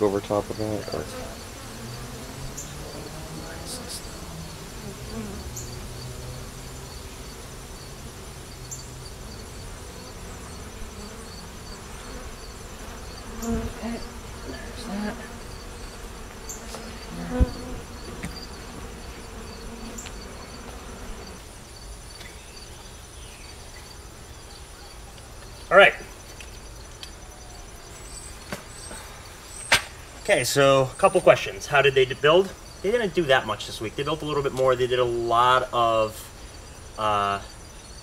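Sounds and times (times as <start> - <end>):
honeybees buzzing: 0.0 - 38.0.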